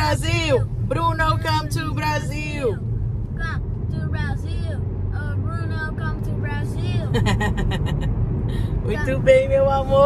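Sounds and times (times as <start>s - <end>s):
car interior rumble: 0.0s - 10.0s
child talking: 3.4s - 7.1s.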